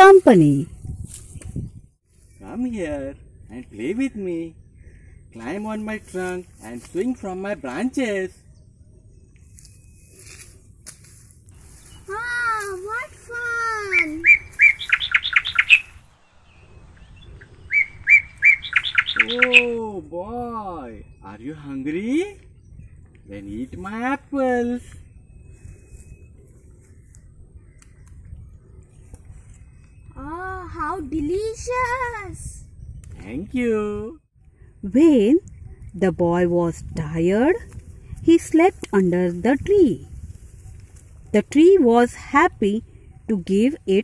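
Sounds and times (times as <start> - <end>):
steady low rumble: 8.3 - 24.3.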